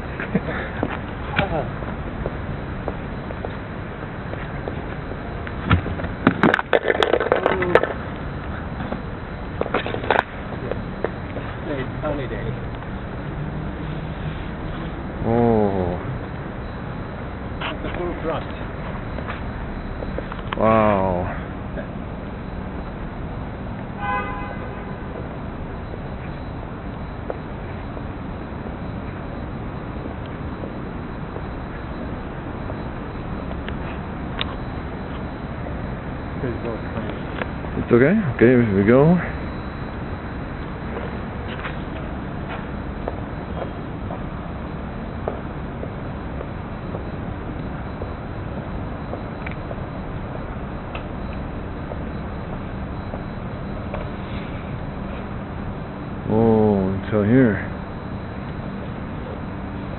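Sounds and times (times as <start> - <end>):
city traffic hum: 0.0 - 59.9
vehicle horn toot: 24.0 - 25.2.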